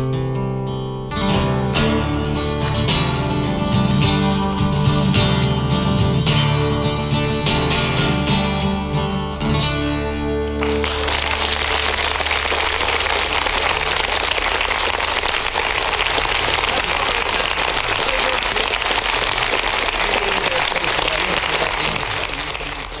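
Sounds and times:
audience applauding: 10.5s - 23.0s.

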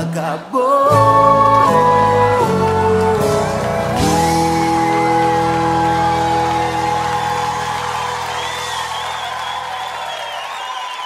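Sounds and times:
crowd whooping and cheering: 0.9s - 11.0s
live band closing chord: 1.0s - 9.6s.

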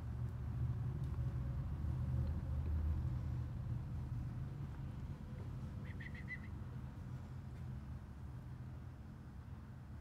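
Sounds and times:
bird chirping: 5.8s - 6.6s.

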